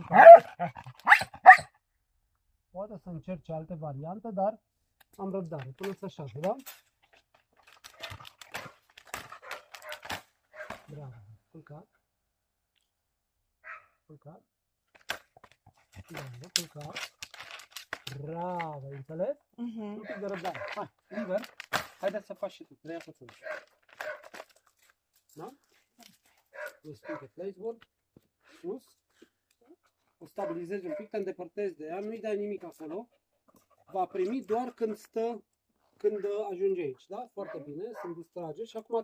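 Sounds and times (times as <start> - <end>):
young dog barking: 0.0 - 1.7, 9.3 - 10.8, 13.6 - 14.0, 20.0 - 21.3, 23.4 - 24.3, 26.5 - 27.3, 30.4 - 31.1, 37.4 - 38.2
woman speaking: 19.6 - 20.2
dog panting: 29.1 - 31.1, 32.7 - 34.4.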